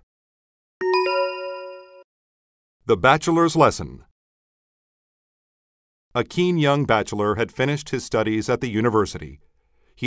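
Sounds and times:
bell-like chime: 0:00.8 - 0:02.1.

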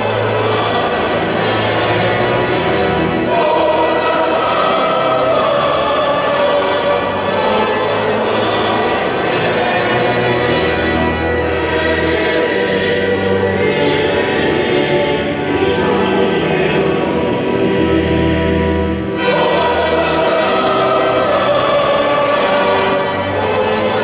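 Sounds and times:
choir singing held notes: 0:00.0 - 0:24.0.

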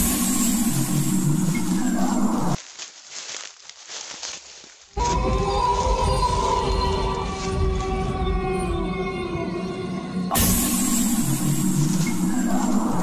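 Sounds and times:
eerie horror music: 0:00.0 - 0:02.6, 0:05.0 - 0:13.0
soft rustling: 0:02.6 - 0:05.1.

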